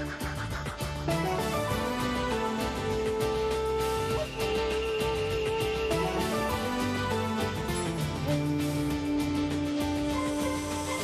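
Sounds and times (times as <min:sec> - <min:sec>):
theme music with steady beat: 0:00.0 - 0:11.0.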